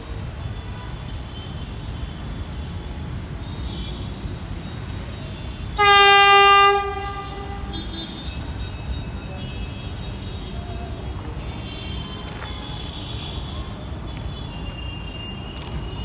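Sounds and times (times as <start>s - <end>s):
train horn blast: 5.8s - 7.7s.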